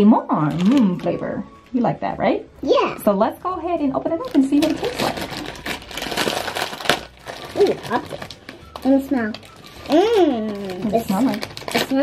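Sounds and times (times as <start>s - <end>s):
foil snack bag crinkling: 0.4s - 1.4s, 4.2s - 12.0s.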